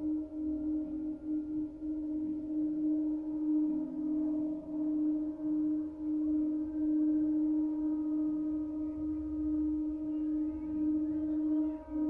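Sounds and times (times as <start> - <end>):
low singing tone with overtones: 0.0 - 12.0.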